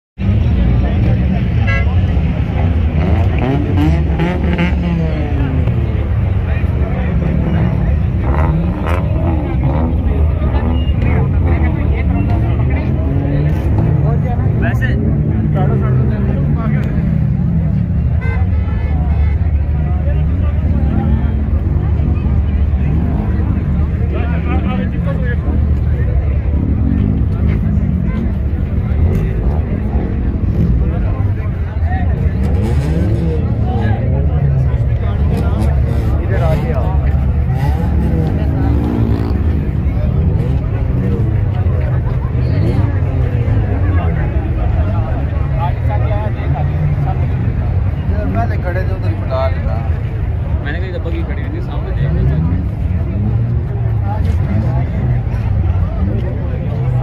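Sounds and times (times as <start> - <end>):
crowd chatter: 0.2 - 57.0.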